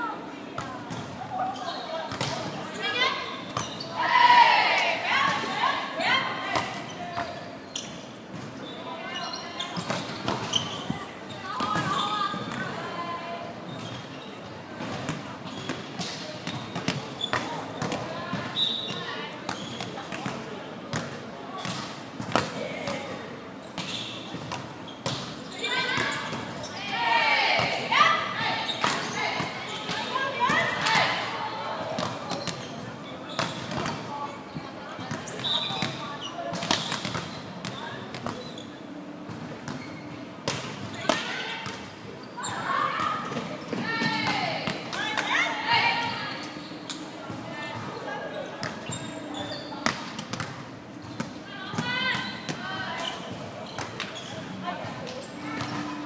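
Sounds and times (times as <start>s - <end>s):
players shouting: 26.8s - 29.5s.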